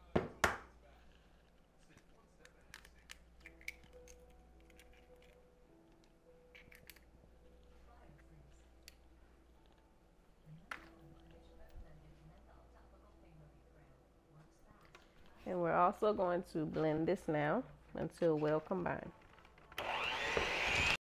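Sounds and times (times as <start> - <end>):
faint background music: 0.0 - 21.0.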